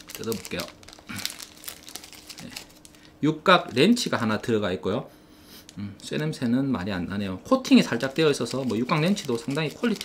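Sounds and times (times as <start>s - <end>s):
plastic bag tearing and crinkling: 0.0s - 3.1s, 7.8s - 10.0s.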